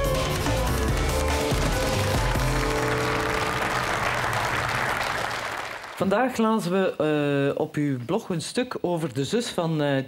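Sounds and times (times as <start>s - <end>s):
show theme music: 0.0s - 6.2s
studio audience applause: 0.0s - 6.4s.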